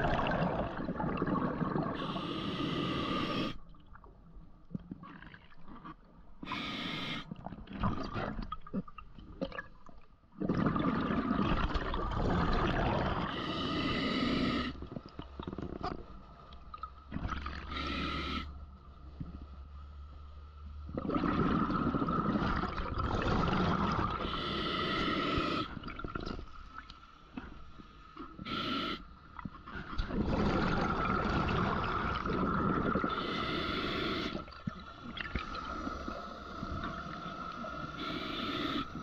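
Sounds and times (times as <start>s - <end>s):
exhaled bubbles bursting: 0.0s - 2.2s, 10.4s - 13.3s, 20.9s - 24.3s, 29.7s - 33.3s
hissing regulator inhalations: 2.0s - 3.6s, 6.4s - 7.3s, 13.3s - 14.9s, 17.7s - 18.5s, 24.2s - 25.8s, 28.4s - 29.1s, 32.8s - 39.0s.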